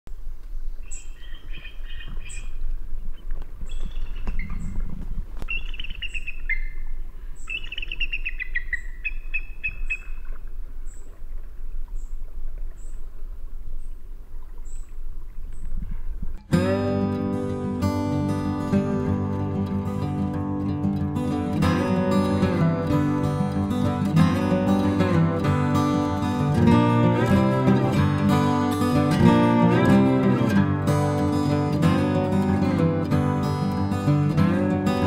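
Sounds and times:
songbirds chirping and trilling: 0.8 - 11.2, 14.6 - 15.8
short high bird chirp: 5.5 - 10.2.

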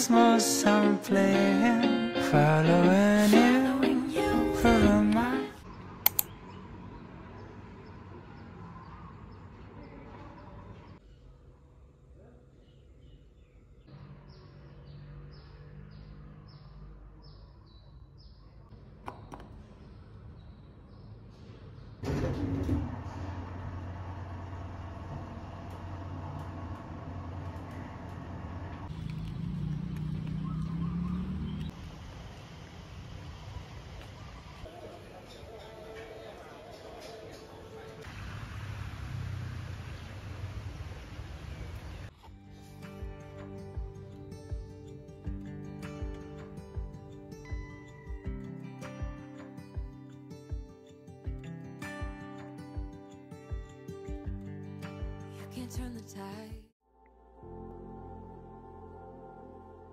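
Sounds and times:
birds chirping: 12.5 - 22.0, 28.9 - 31.8, 33.4 - 38.0.

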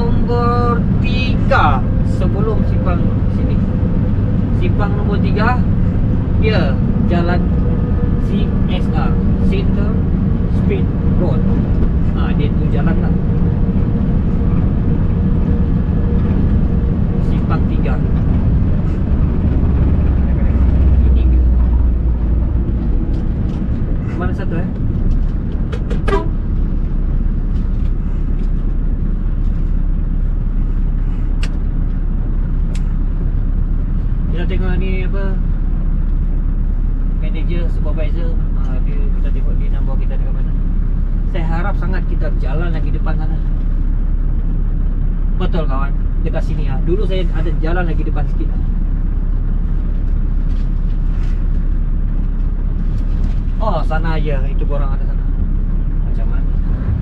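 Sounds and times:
truck diesel engine drone: 0.0 - 57.0.

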